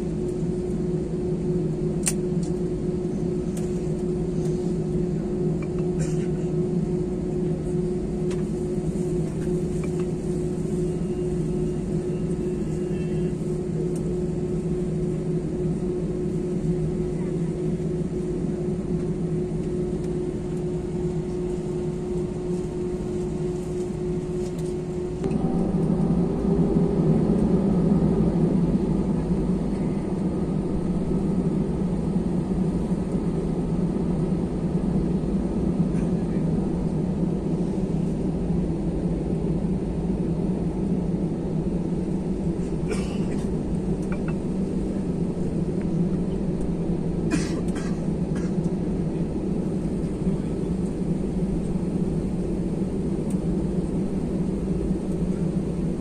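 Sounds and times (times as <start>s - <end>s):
jet airliner engine and cabin hum: 0.0s - 56.0s
jet engine rumble: 0.0s - 56.0s.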